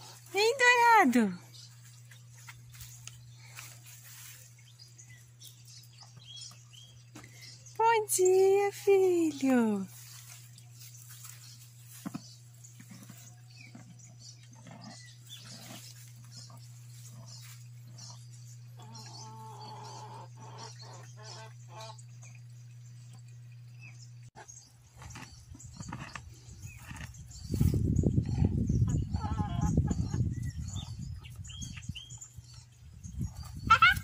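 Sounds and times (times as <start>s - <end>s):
low steady hum: 0.0s - 34.0s.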